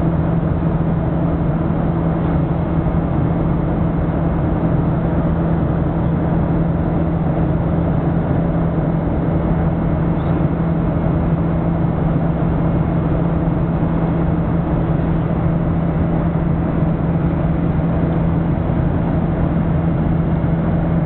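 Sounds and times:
airplane cabin drone: 0:00.0 - 0:21.0.

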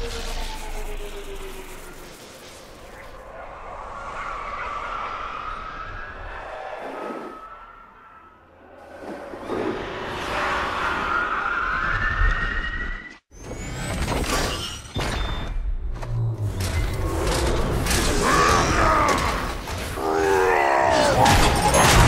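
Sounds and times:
rushing noise: 0:00.0 - 0:12.7.

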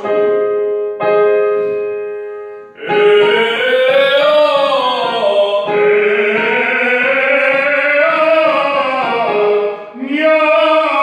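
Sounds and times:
man singing vocal warm-up: 0:02.8 - 0:11.0.

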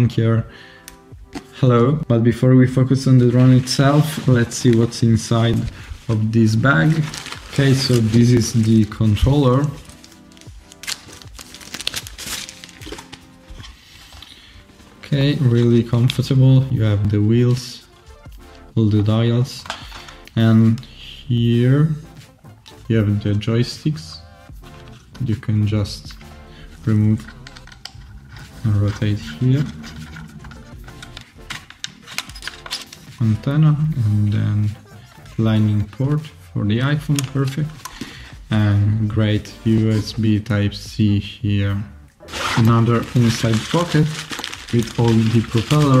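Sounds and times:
soft background music: 0:00.0 - 0:46.0
rustling: 0:03.3 - 0:16.3, 0:42.3 - 0:46.0.

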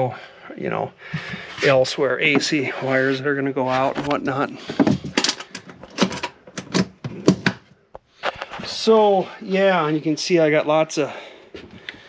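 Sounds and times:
hand tools clicking and knocking: 0:04.6 - 0:07.6.

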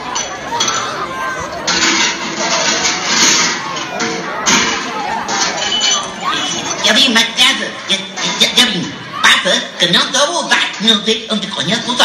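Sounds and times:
crowd voices talking and calling out: 0:00.0 - 0:12.0.

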